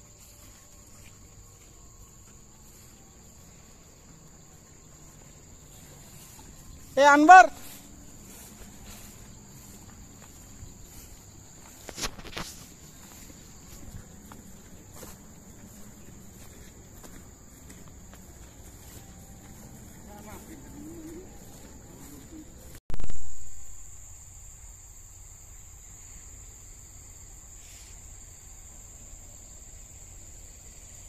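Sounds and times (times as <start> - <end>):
footsteps through grass: 0.0 - 23.4
insects buzzing: 0.0 - 31.0.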